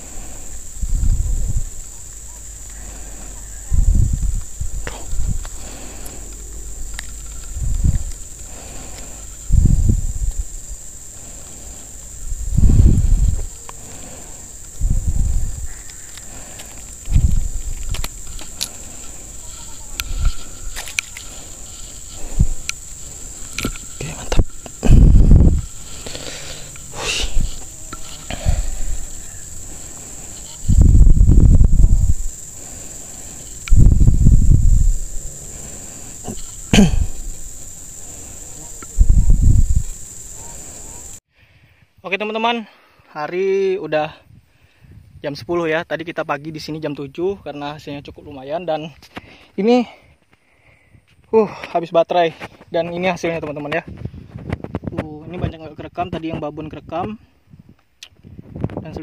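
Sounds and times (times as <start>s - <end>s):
high-pitched insect drone: 0.0s - 41.2s
loud low rumbles: 0.8s - 15.8s, 16.4s - 40.0s.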